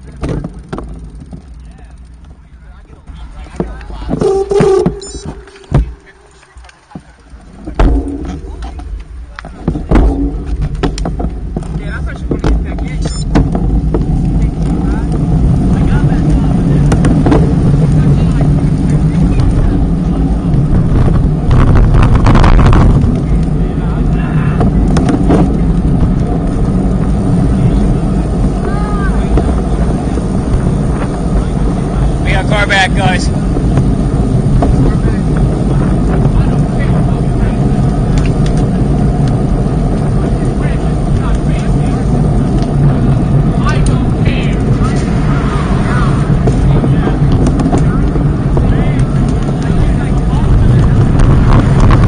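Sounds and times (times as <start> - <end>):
wind buffeting microphone: 2.9 - 52.0.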